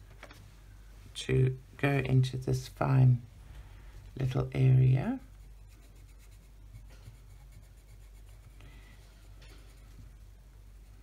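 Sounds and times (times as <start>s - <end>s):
pencil scratching on paper: 5.2s - 8.6s.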